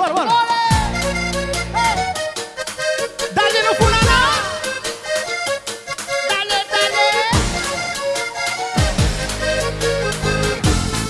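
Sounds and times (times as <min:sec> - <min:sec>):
busy percussion: 0:00.0 - 0:11.0
accordion melody: 0:00.7 - 0:11.0.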